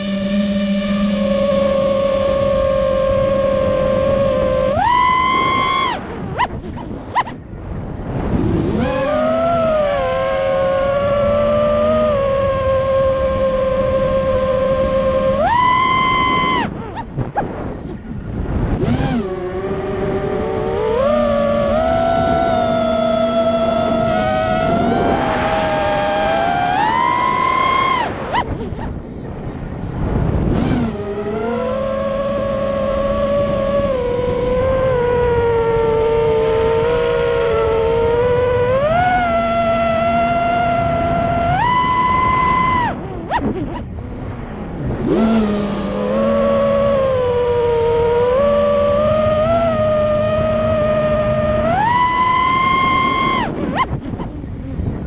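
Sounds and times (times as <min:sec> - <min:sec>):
quadcopter motors whining: 0:00.0 - 0:55.0.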